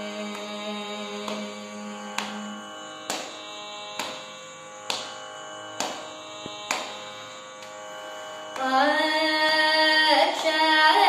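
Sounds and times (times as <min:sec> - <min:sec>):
tanpura drone: 0:00.0 - 0:11.0.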